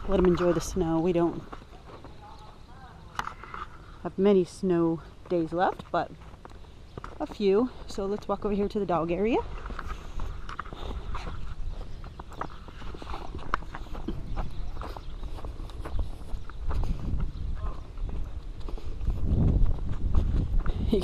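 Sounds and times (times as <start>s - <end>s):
footsteps crunching through snow: 0.0s - 21.0s
microphone rumble: 9.4s - 21.0s.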